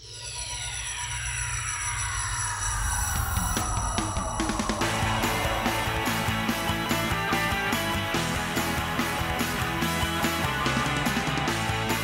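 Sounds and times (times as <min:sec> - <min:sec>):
synthesized tones sliding downward: 0:00.0 - 0:11.5
steady low drone: 0:00.0 - 0:12.0.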